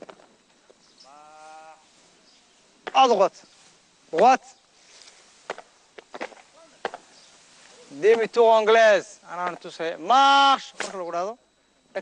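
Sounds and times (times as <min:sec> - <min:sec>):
boots stamping on concrete: 0:05.5 - 0:07.1.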